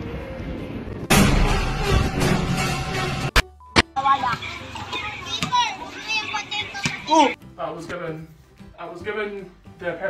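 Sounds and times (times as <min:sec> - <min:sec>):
children calling and chattering: 0:04.0 - 0:07.4.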